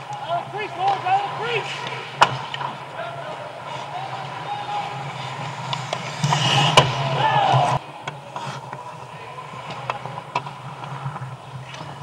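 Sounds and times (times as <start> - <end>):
players shouting: 0.0 - 10.2
hockey puck being struck: 0.8 - 2.7, 5.6 - 8.2.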